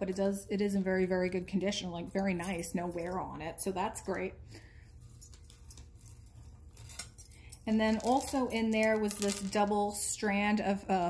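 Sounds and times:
low steady hum: 0.0s - 11.0s
chain links clinking and scraping: 4.8s - 10.0s.

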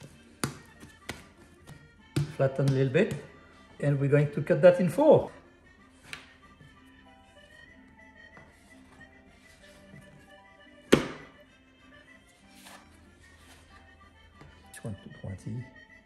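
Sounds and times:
quiet background music: 0.0s - 16.0s
dough scraper thunk on countertop: 10.9s - 11.3s.

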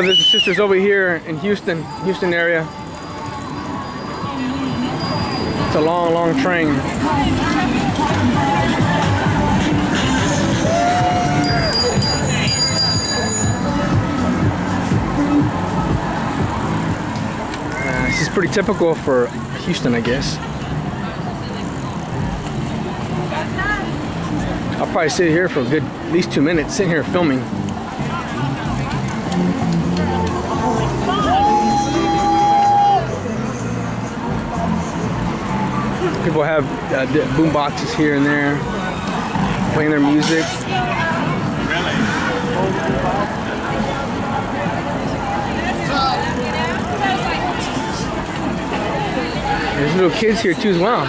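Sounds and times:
low street rumble: 0.0s - 51.0s
riders chattering: 0.0s - 51.0s.

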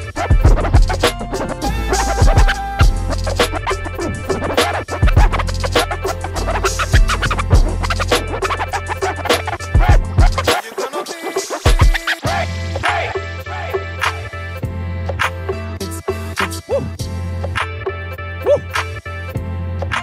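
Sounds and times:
heavy bass beat: 0.0s - 10.8s, 11.4s - 14.3s
record scratching: 0.0s - 12.3s
hip-hop dj mix: 0.0s - 20.0s.

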